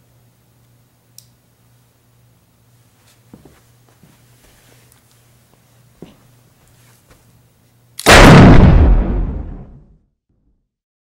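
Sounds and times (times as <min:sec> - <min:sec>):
faint steady hum: 0:00.0 - 0:09.9
very loud bang: 0:08.0 - 0:09.9.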